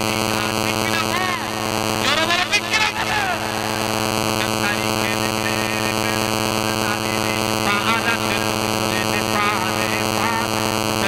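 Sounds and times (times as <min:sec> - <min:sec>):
electrical hum: 0:00.0 - 0:11.0
man speaking over public address: 0:00.0 - 0:11.0.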